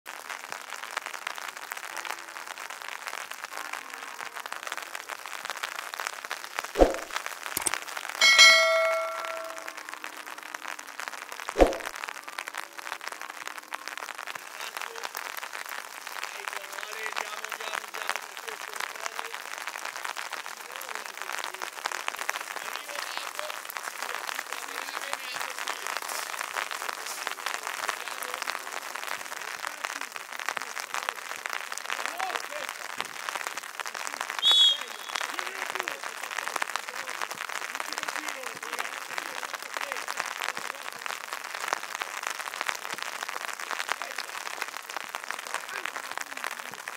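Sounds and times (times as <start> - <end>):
loud metallic clang: 7.6 - 9.7
faint voices: 20.6 - 32.9.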